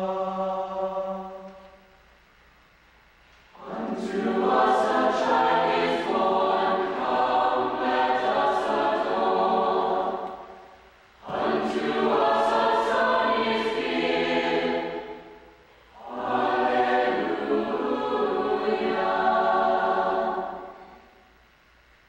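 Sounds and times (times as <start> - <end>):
mixed choir singing: 0.0 - 1.8, 3.5 - 21.2.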